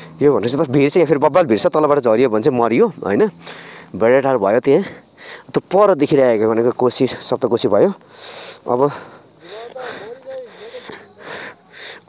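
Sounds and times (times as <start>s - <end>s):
insect chorus chirring: 0.0s - 12.0s.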